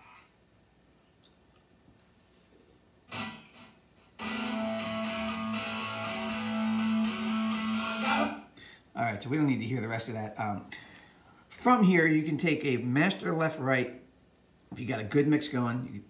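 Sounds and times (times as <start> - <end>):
distorted electric guitar chord: 3.1 - 8.4.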